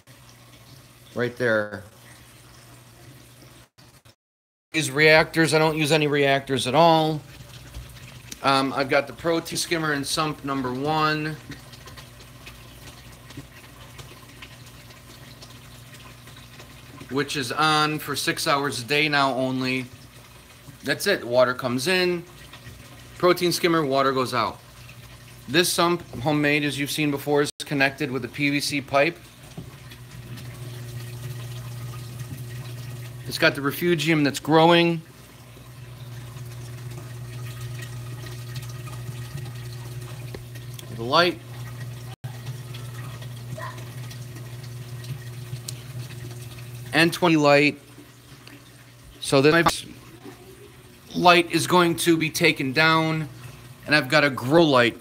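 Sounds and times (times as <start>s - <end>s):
water trickling and bubbling: 0.0s - 4.1s, 4.8s - 55.0s
low pump hum: 4.8s - 55.0s.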